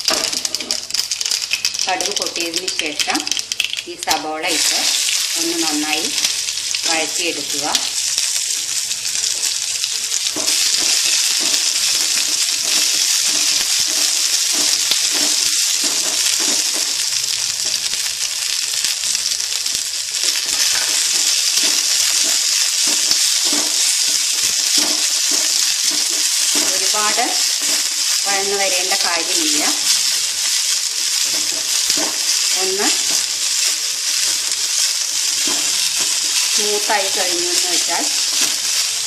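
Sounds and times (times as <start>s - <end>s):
onions sizzling in oil: 0.0s - 39.0s
spoon stirring in metal pan: 10.2s - 17.8s, 20.2s - 38.9s.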